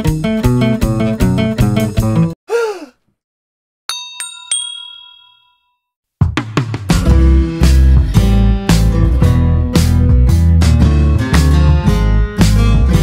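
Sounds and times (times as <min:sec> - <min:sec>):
guitar background music: 0:00.0 - 0:02.3, 0:07.1 - 0:13.0
bright chime dings: 0:03.9 - 0:05.8.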